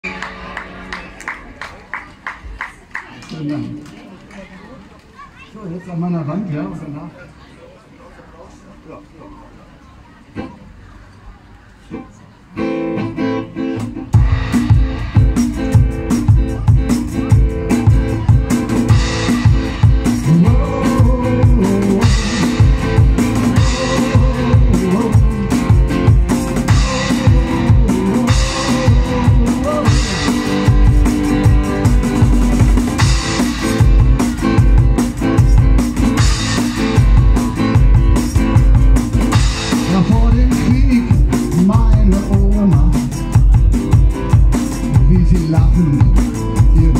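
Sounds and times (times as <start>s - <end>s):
amplified guitar: 11.9s - 46.9s
cajon beat: 12.0s - 46.9s.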